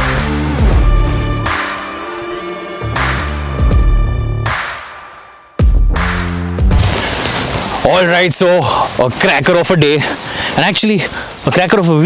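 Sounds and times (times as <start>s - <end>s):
man talking: 7.8s - 12.0s.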